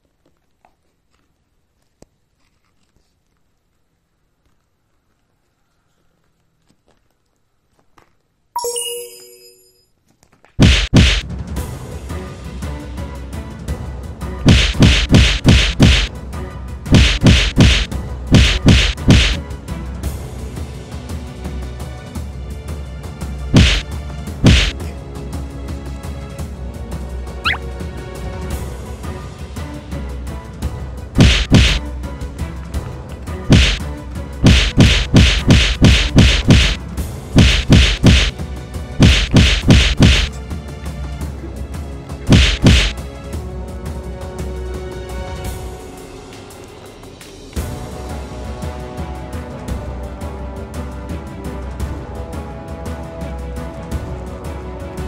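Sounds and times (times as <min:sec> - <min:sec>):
loud whacks: 0:10.6 - 0:11.2, 0:14.4 - 0:16.1, 0:16.9 - 0:19.4, 0:23.6 - 0:24.8, 0:31.2 - 0:31.8, 0:33.5 - 0:33.8, 0:34.4 - 0:36.8, 0:37.4 - 0:38.3, 0:39.0 - 0:40.3, 0:42.3 - 0:43.0.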